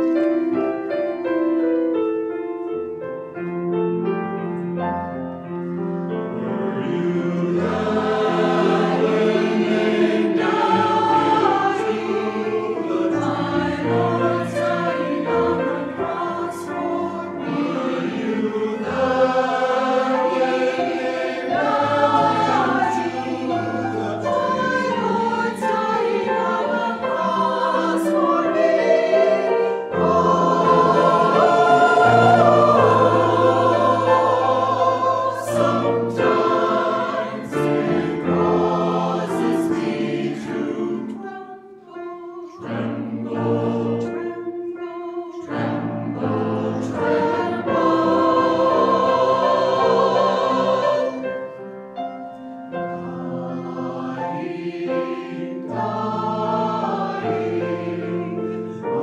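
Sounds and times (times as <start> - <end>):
church choir singing: 0.0 - 59.0.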